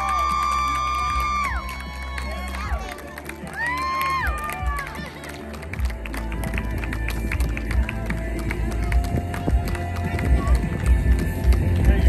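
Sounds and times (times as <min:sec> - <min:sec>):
music with a voice: 0:00.0 - 0:12.0.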